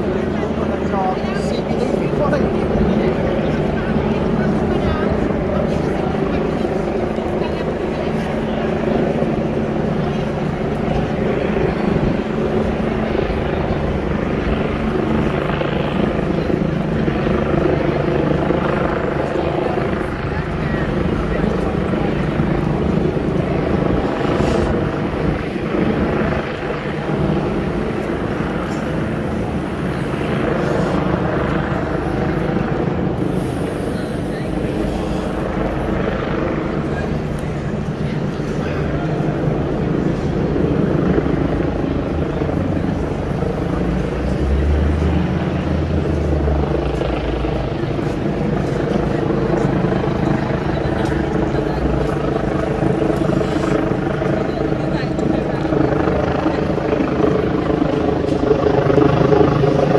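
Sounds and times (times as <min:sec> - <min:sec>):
low mechanical drone: 0:00.0 - 0:59.9
people chattering: 0:00.0 - 0:59.9.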